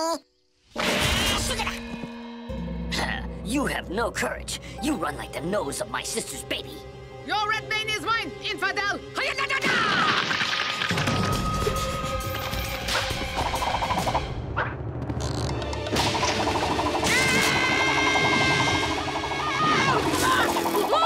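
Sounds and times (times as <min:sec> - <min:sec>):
wood breaking: 0:09.6 - 0:11.4
fast cartoon action music: 0:11.0 - 0:14.6, 0:15.8 - 0:21.0.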